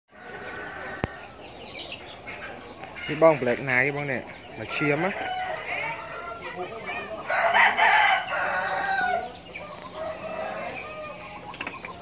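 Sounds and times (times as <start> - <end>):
faint chicken calls: 0.1 - 12.0
rooster crowing: 4.9 - 11.3.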